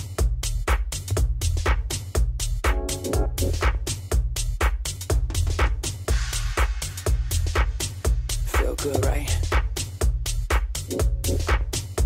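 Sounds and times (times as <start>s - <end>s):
offbeat hi-hats: 0.0s - 12.0s
steady kick drum: 0.0s - 12.0s.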